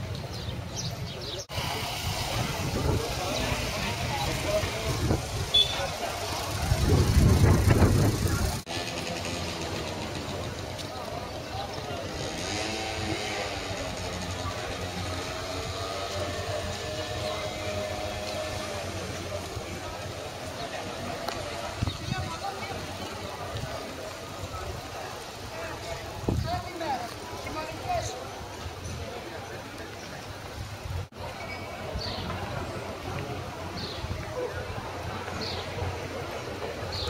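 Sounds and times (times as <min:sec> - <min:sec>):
faint murmur of voices: 0:00.0 - 0:37.0
road traffic noise: 0:00.0 - 0:37.0
street ambience: 0:00.0 - 0:37.0
vehicle engine running: 0:01.5 - 0:21.8.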